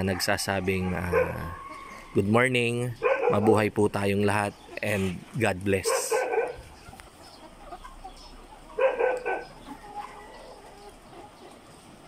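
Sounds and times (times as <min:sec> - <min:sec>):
chickens clucking: 0:00.0 - 0:12.0.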